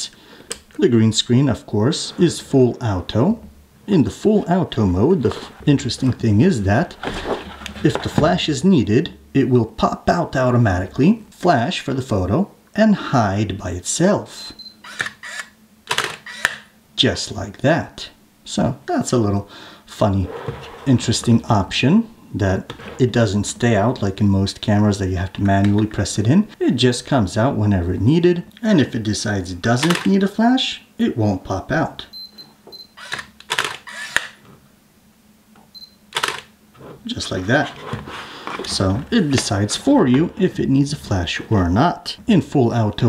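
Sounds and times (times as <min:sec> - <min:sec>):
autofocus beep: 0:14.4 - 0:14.8, 0:32.1 - 0:33.0, 0:35.7 - 0:36.0
camera mechanical clicks: 0:14.8 - 0:16.7, 0:29.8 - 0:30.1, 0:33.0 - 0:34.4, 0:36.1 - 0:36.5.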